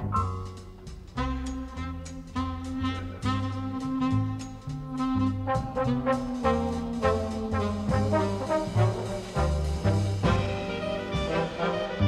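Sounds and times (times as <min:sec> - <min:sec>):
big band jazz: 0:00.0 - 0:12.0
brass accented chords: 0:00.0 - 0:12.0.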